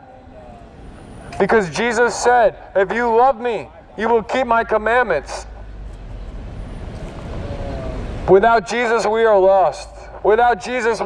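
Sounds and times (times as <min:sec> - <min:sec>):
car driving past slowly: 0:05.5 - 0:08.3.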